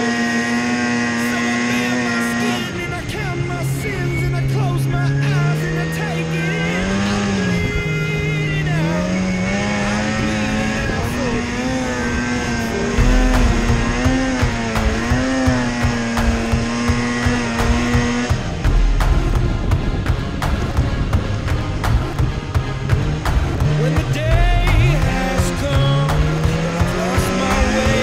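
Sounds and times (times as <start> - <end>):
snowmobile engine revving: 0.0 - 28.0
low thumping: 12.8 - 27.0.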